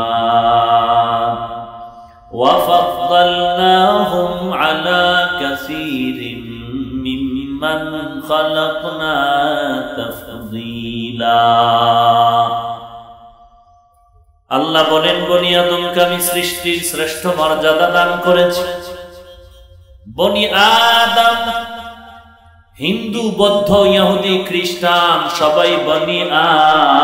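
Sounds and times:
man chanting melodically: 0.0 - 13.3, 14.5 - 27.0.

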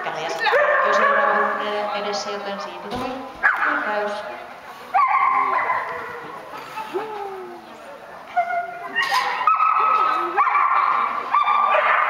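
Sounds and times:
dog yelping barks: 8.4 - 12.0.

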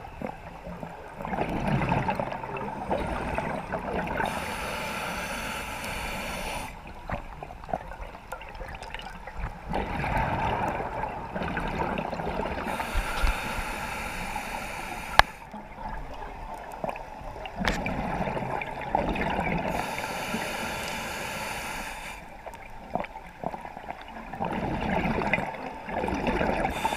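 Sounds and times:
gurgling exhaled bubbles: 0.2 - 4.6, 6.5 - 13.4, 15.8 - 19.8, 22.9 - 26.9
hissing regulator inhalations: 4.2 - 6.8, 12.7 - 15.5, 19.7 - 22.3, 26.7 - 26.9.

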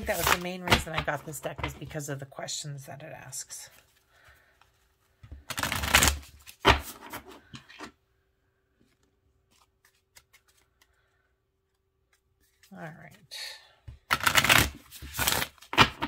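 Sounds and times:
cards being shuffled: 0.0 - 1.3, 4.7 - 7.6, 8.9 - 13.2, 14.0 - 16.0.

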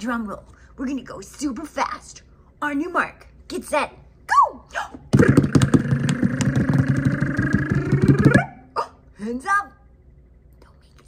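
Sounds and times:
hand drum roll: 5.1 - 8.6.

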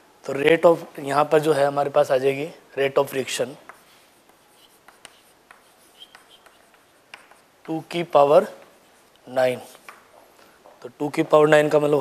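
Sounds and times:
chalk tapping and scratching: 3.1 - 10.8
chalk squeak: 3.7 - 7.5.

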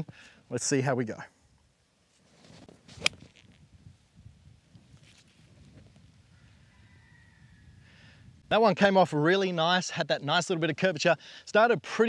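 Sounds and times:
golf club swishing: 2.1 - 3.6.

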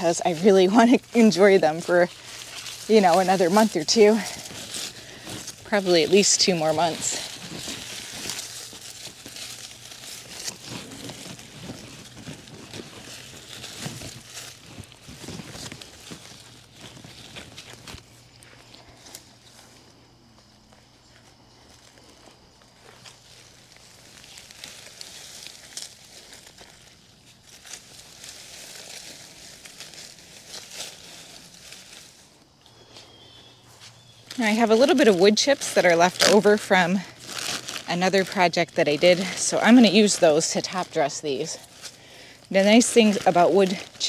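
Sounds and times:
faint low hum: 0.0 - 44.0
rustling of leaves and soil: 0.0 - 44.0.

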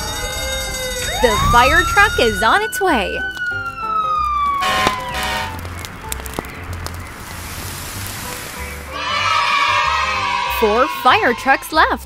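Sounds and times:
fire truck siren falling in pitch: 0.0 - 5.7.

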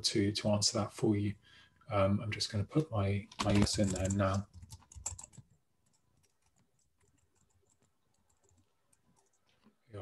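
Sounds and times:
computer keyboard typing: 3.2 - 9.5.

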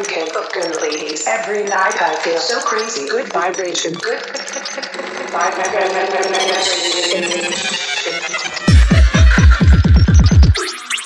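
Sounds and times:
voice-like sample: 0.0 - 10.6
held synth tones: 0.0 - 11.0.

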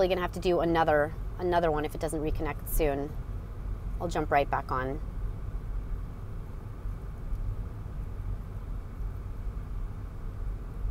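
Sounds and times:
car cabin engine and road rumble: 0.0 - 10.9.

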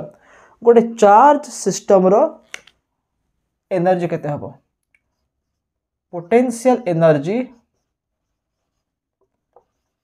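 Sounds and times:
marker pen writing on whiteboard: 3.9 - 10.0.

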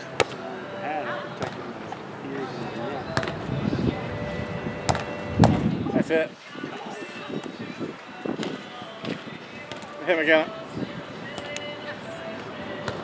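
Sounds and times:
murmur of onlookers' voices: 0.0 - 13.0
volleyball being hit: 1.4 - 1.6, 3.1 - 3.4, 4.9 - 5.6.

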